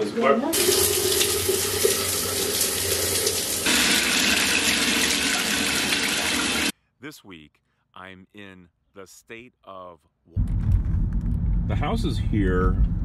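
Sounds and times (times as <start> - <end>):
shower spraying on tiled wall: 0.5 - 6.7.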